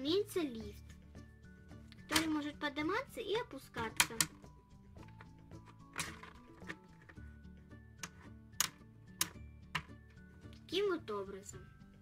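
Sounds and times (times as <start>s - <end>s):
soft background music: 0.0s - 12.0s
plastic toy clicks and knocks: 2.1s - 2.3s, 3.8s - 4.4s, 5.1s - 7.2s, 8.0s - 9.9s.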